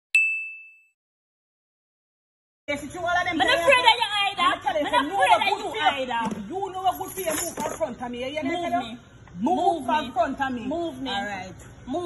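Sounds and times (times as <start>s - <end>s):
bell ding: 0.1s - 1.0s.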